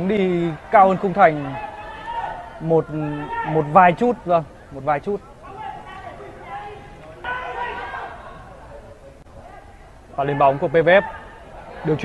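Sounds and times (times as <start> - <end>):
low open-air hum: 0.0 - 12.0
players calling to each other: 0.0 - 12.0.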